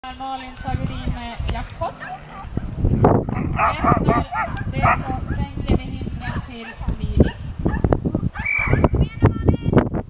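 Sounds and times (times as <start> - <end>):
people talking: 0.0 - 2.2, 3.6 - 7.4, 8.8 - 9.8
dog barking: 1.8 - 2.6, 3.3 - 5.5, 6.3 - 8.9.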